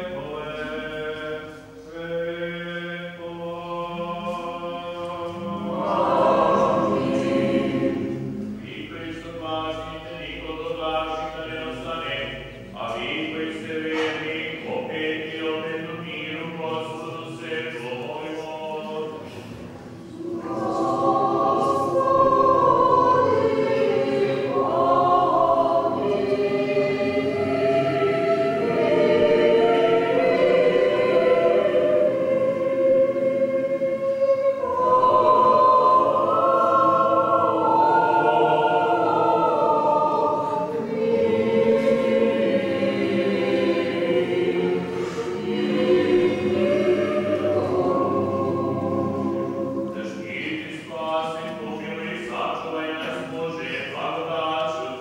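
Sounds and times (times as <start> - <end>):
choir chanting unaccompanied: 0.0 - 55.0.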